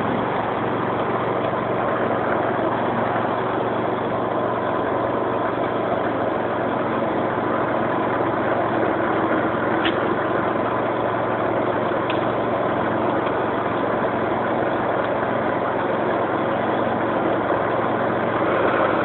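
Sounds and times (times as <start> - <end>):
brush cutter engine running: 0.0 - 19.0.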